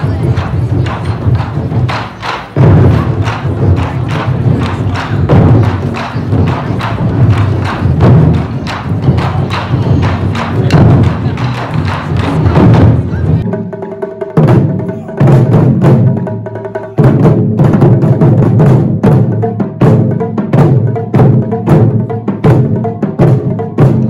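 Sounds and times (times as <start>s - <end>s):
taiko drums booming: 0.0s - 24.0s.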